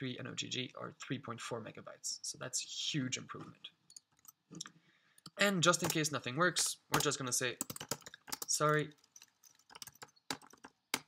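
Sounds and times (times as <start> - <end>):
computer keyboard keystrokes: 7.0 - 11.0.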